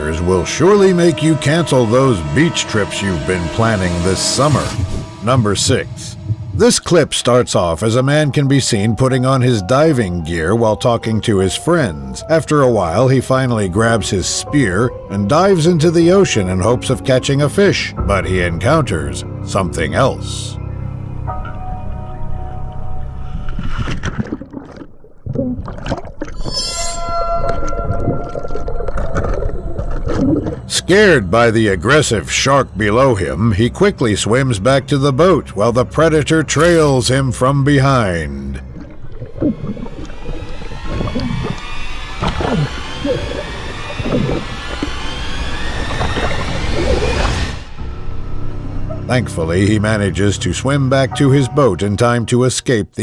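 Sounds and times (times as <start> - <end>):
faint high whine: 0.0 - 8.8, 36.5 - 51.9
muffled underwater rushing: 23.2 - 30.7, 36.6 - 47.8
underwater bubbling: 23.2 - 30.7, 38.5 - 47.6.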